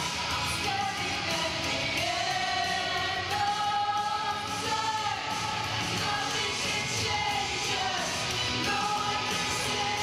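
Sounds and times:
male vocal group singing: 0.0 - 10.0.

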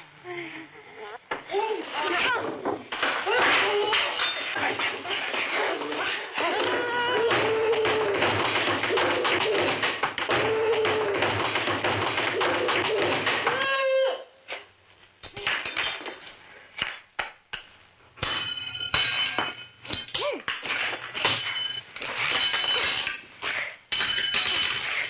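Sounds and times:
tableware clattering: 2.5 - 6.2, 15.2 - 17.0, 18.2 - 25.0
girl wailing and grunting: 6.4 - 8.4, 9.0 - 11.3.

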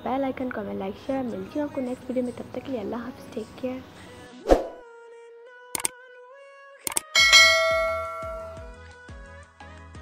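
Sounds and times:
faint background music: 0.0 - 10.0
mouse click sound effects: 6.9 - 7.1
bell ding: 7.1 - 8.8.

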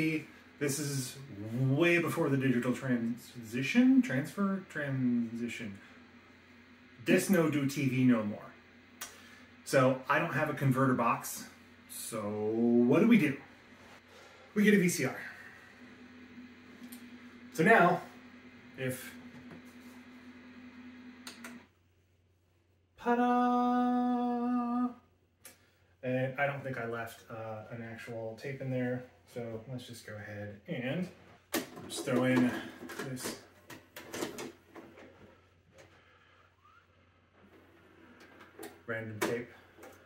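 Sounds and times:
faint mechanism whirring: 0.0 - 21.7
short rising whine: 0.0 - 21.7
static hiss: 0.0 - 21.8
low steady hum: 0.0 - 40.0
soft clicks: 21.2 - 21.7.

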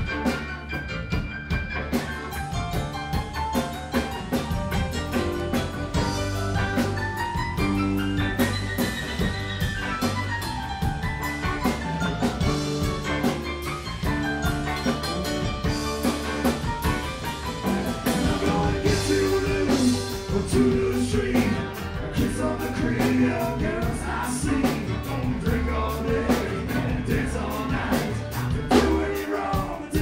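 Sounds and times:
bass: 0.0 - 30.0
drum kit: 0.0 - 30.0
electric keyboard: 0.0 - 30.0
man singing lead: 18.0 - 30.0.

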